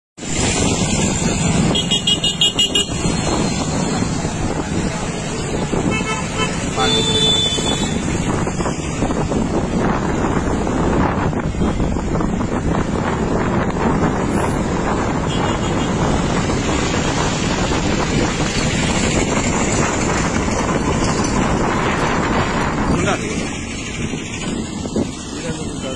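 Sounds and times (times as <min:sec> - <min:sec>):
vehicle road and engine noise: 0:00.2 - 0:25.9
wind buffeting microphone: 0:00.2 - 0:25.9.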